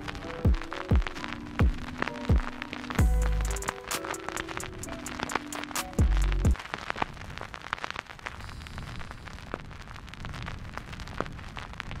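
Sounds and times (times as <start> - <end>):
crackling static hiss: 0.0 - 12.0
deep bass boom: 3.0 - 3.6.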